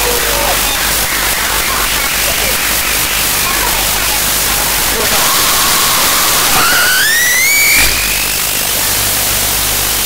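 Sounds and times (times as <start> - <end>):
wavering electronic tone rising: 0.0 - 9.6
harsh noise hiss and static: 0.0 - 10.0.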